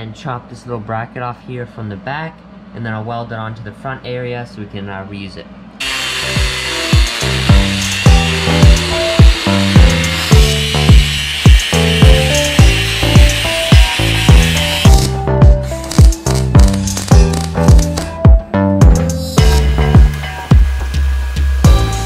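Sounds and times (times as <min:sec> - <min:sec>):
angle grinder cutting steel: 0:05.8 - 0:18.1, 0:19.1 - 0:22.0
music with steady beat: 0:06.2 - 0:22.0.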